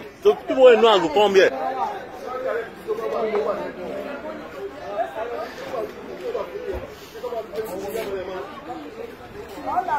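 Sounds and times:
people talking indistinctly: 0:00.0 - 0:09.9.

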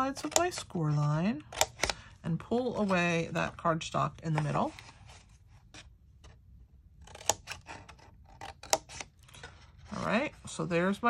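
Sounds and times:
scissors snipping cardstock: 0:00.1 - 0:00.7, 0:07.0 - 0:09.1.

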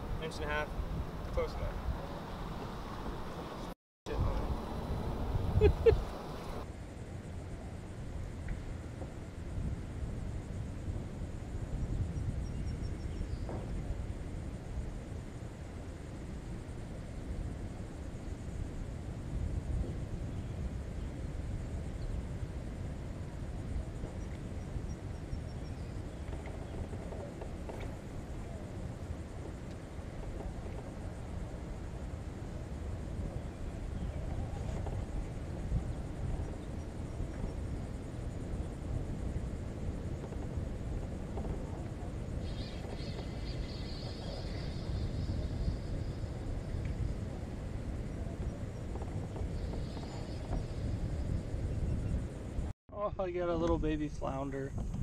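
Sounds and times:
wind rumble on microphone: 0:00.0 - 0:55.0.

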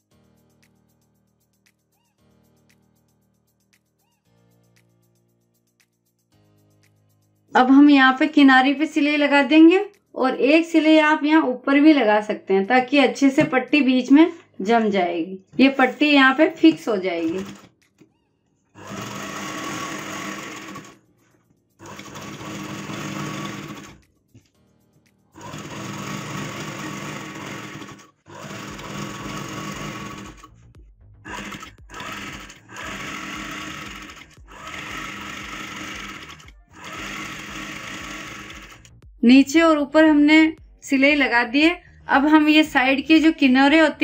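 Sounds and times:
sewing machine stitching: 0:16.6 - 0:17.7, 0:18.8 - 0:21.0, 0:21.8 - 0:24.0, 0:25.4 - 0:30.6, 0:31.3 - 0:38.9.

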